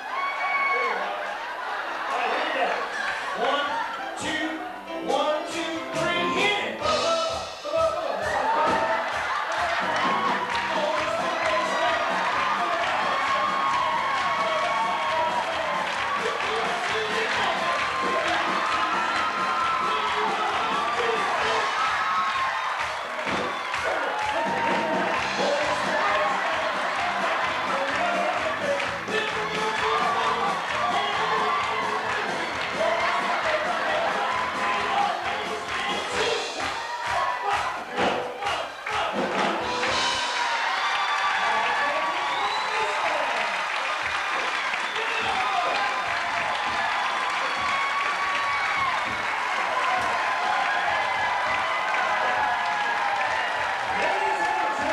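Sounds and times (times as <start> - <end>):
crowd cheering: 0.0 - 54.9
live band music: 3.8 - 41.4.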